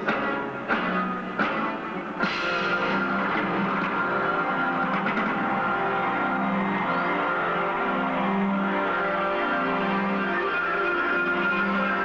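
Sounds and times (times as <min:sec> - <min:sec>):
rock band playing held chords: 0:00.0 - 0:12.0.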